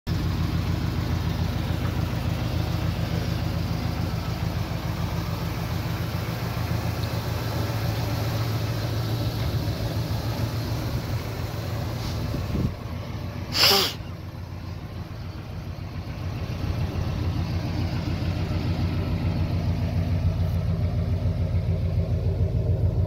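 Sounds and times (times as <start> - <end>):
car engine idling: 0.1 - 23.0.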